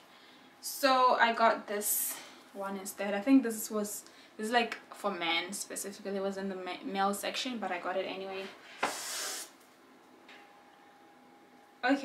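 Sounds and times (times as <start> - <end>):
short breathy hiss: 8.7 - 9.6.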